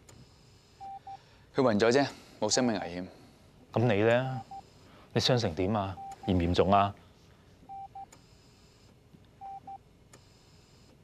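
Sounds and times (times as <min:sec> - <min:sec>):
patient monitor beeping: 0:00.8 - 0:01.3, 0:04.2 - 0:05.0, 0:05.8 - 0:06.7, 0:07.6 - 0:08.5, 0:09.4 - 0:10.9.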